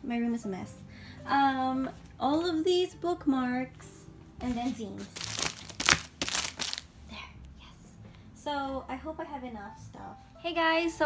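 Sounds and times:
plastic packaging crinkling: 0:05.0 - 0:06.9.

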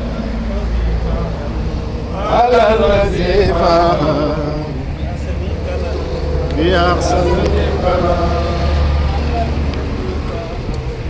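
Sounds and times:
scattered voices: 0:00.0 - 0:11.0
steady low rumble: 0:00.0 - 0:11.0
group chanting: 0:01.1 - 0:10.3.

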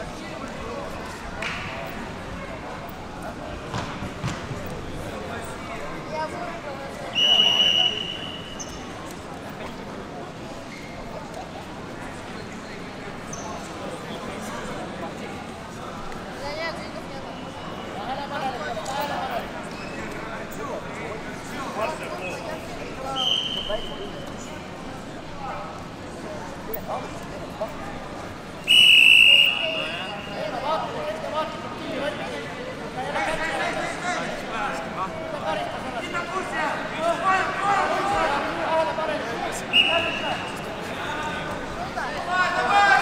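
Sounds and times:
referee's whistle blast: 0:07.1 - 0:08.7, 0:23.2 - 0:24.0, 0:28.6 - 0:30.4, 0:39.7 - 0:40.6.

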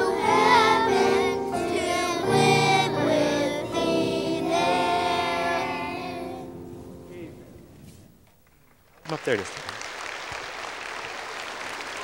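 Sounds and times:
congregation applauding: 0:08.7 - 0:12.0.

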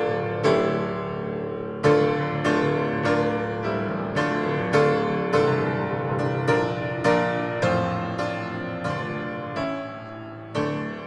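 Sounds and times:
grand piano heavy chords: 0:00.0 - 0:11.0.

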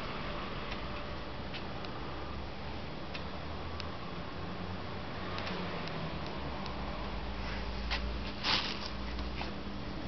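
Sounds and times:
light irregular ticks: 0:05.3 - 0:06.8.

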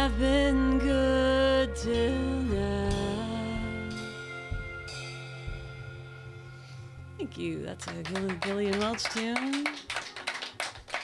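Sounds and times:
band chord ringing out: 0:00.0 - 0:07.6.

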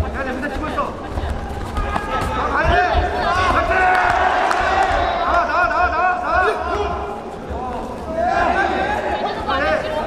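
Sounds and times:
people calling out and chattering: 0:00.0 - 0:10.0.

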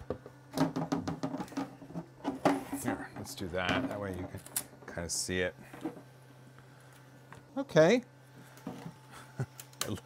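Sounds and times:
faint steady hum: 0:00.0 - 0:10.0
plastic parts knocking and scraping: 0:00.1 - 0:04.4.

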